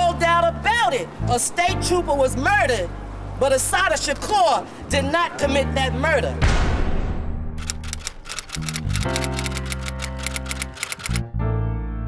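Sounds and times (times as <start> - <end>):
typewriter keystrokes clacking: 7.6 - 11.2
music with low sustained chord: 8.9 - 12.0.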